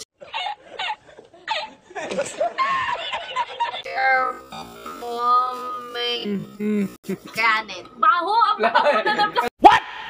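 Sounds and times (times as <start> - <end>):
man laughing in high giggles: 0.2 - 3.8
music: 3.9 - 9.3.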